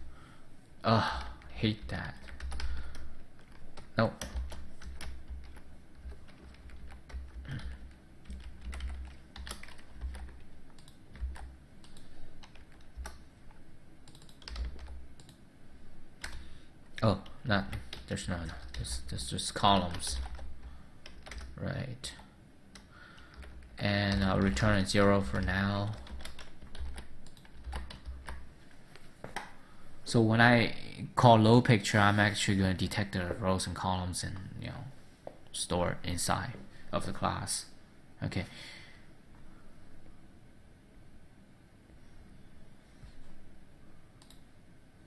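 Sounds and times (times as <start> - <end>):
computer keyboard typing: 1.1 - 15.4, 16.2 - 28.5, 44.2 - 44.4.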